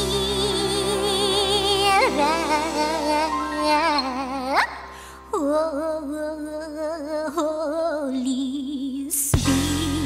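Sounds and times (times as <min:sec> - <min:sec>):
person singing with vibrato: 0:00.0 - 0:10.0
soft instrumental accompaniment: 0:00.0 - 0:10.0.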